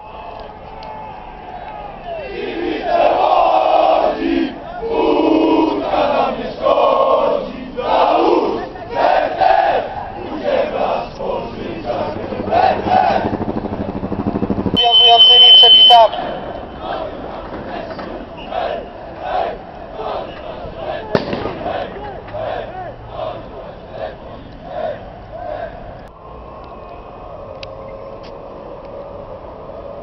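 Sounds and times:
crowd chanting and shouting: 0:00.0 - 0:26.4
high steady tone: 0:13.3 - 0:17.0.

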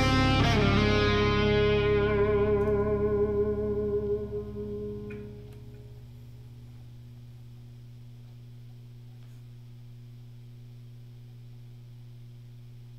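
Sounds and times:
electric guitar chord ringing: 0:00.0 - 0:06.6
low steady hum: 0:00.0 - 0:12.9.

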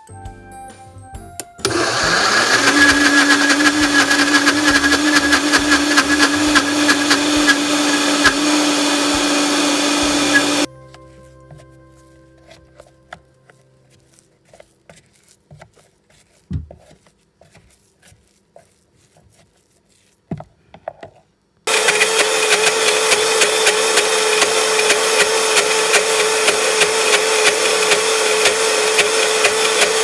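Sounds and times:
soft background music: 0:00.0 - 0:02.2, 0:10.6 - 0:16.2
blender motor running: 0:01.6 - 0:10.7, 0:21.7 - 0:30.0.

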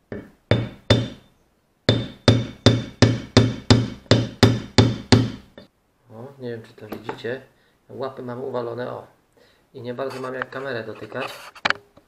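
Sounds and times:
hammer blows on metal: 0:01.9 - 0:05.6.

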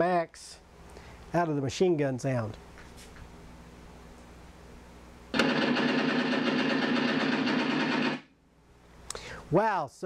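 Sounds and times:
simulated machine-gun effect: 0:05.3 - 0:08.4.

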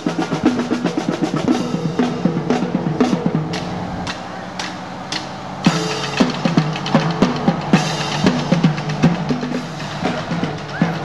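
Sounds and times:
drum line playing cadence: 0:00.0 - 0:11.0.

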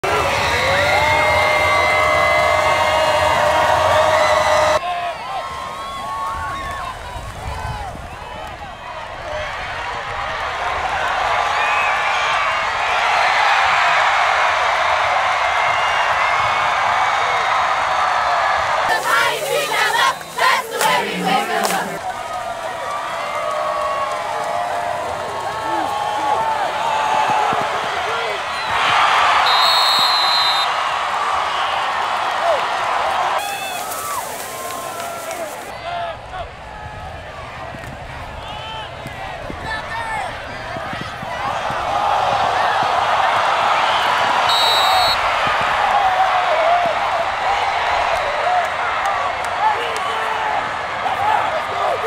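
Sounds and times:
crowd noise: 0:00.0 - 0:52.0
cheerleaders shouting a cheer: 0:18.8 - 0:22.0
high whistle blast: 0:29.4 - 0:30.7, 0:44.5 - 0:45.2.

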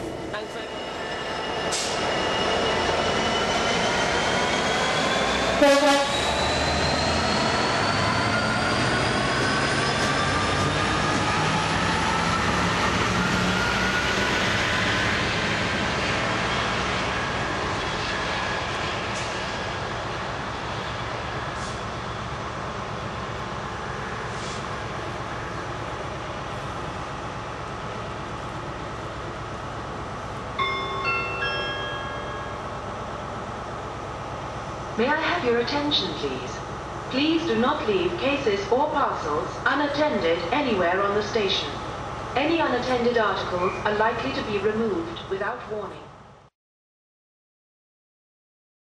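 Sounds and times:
diesel locomotive engine: 0:00.0 - 0:46.5
short chime: 0:30.6 - 0:32.8.

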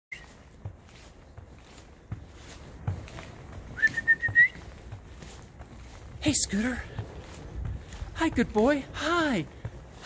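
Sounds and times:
person whistling rising note: 0:03.7 - 0:04.6.

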